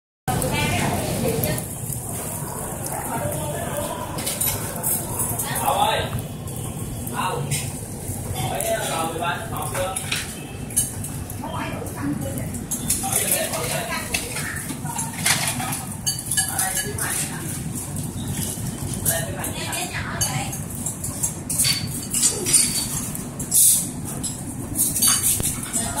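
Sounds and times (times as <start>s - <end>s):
people talking: 0.3s - 17.9s, 18.8s - 20.7s, 25.6s - 26.0s
steady noisy hiss: 0.3s - 26.0s.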